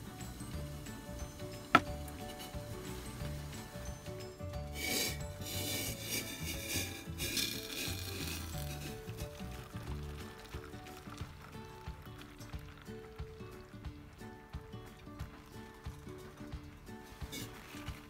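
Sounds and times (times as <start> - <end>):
background music: 0.0 - 18.0
liquid pouring into metal cup: 5.6 - 13.1.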